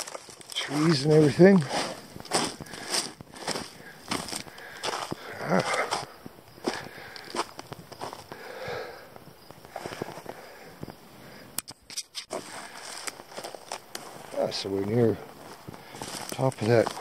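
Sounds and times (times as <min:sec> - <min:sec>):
footsteps on rock: 0:00.0 - 0:08.3, 0:12.3 - 0:17.0.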